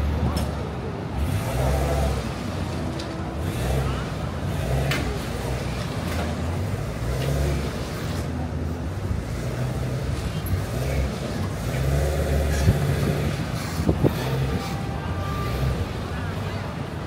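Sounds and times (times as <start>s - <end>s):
traffic engine rumble: 0.0s - 17.0s.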